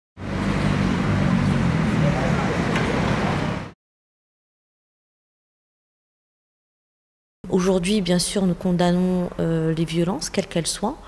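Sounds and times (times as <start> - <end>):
street traffic engines humming: 0.2 - 3.8.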